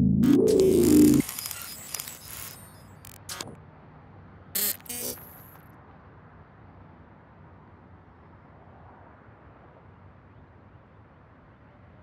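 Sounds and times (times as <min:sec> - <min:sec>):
electronic crackling bursts: 0:00.0 - 0:03.6, 0:04.6 - 0:05.6
thin high whine: 0:00.0 - 0:03.6, 0:04.6 - 0:05.6.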